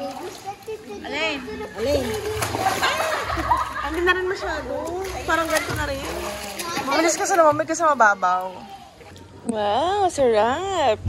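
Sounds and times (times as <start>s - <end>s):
children's voices and calls: 0.0s - 10.4s
pool water splashing: 0.0s - 11.0s.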